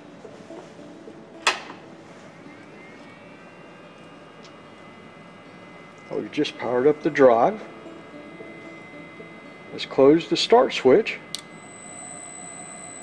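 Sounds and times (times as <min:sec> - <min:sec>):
faint electronic whine: 0:00.0 - 0:13.0.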